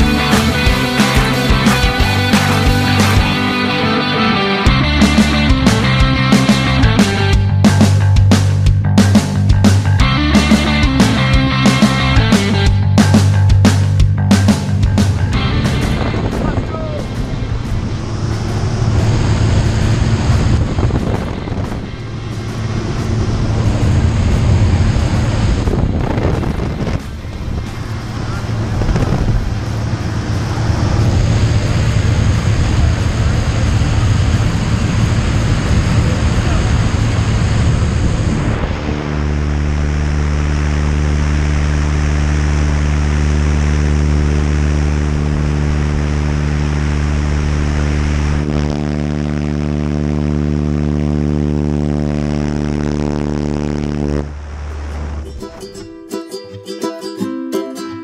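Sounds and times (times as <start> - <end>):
background music of held notes: 0.0 - 7.6, 55.3 - 58.0
propeller plane engine drone: 0.0 - 55.4.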